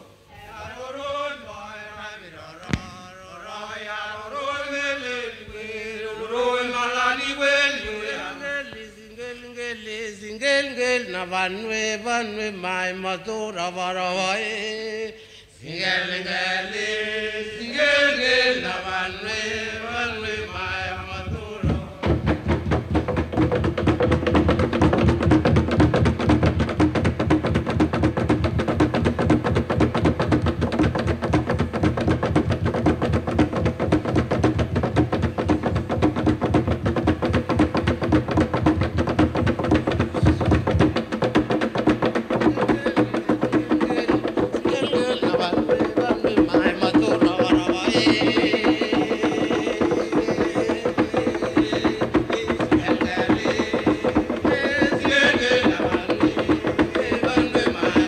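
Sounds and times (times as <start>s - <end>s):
men chanting: 15.6s - 22.2s, 42.3s - 58.0s
fast slit drum drumming: 19.4s - 58.0s.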